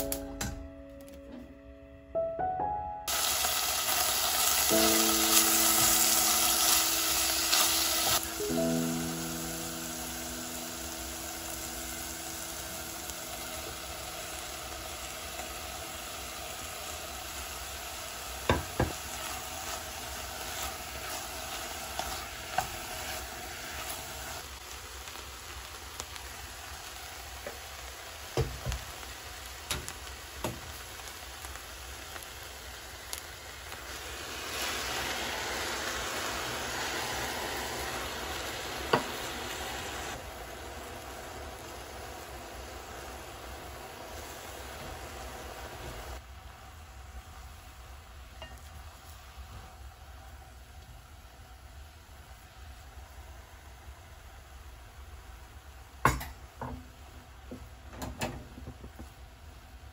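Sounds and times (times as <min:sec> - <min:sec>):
vegetables sizzling in a pot: 0:03.1 - 0:59.9.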